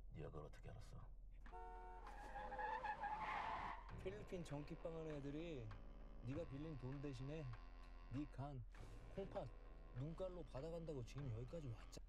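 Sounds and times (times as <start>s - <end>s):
car tires screeching: 1.6s - 4.0s.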